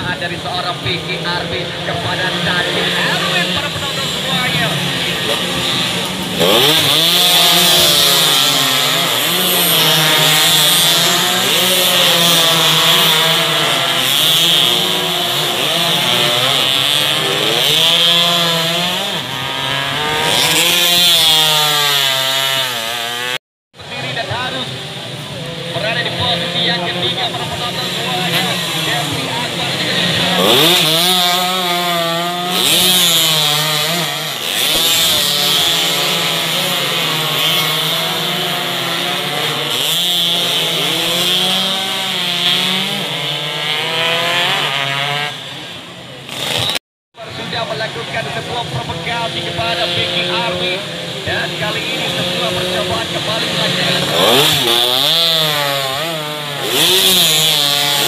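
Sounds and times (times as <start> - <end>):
motorcycles buzzing at high revs: 0.0 - 58.0.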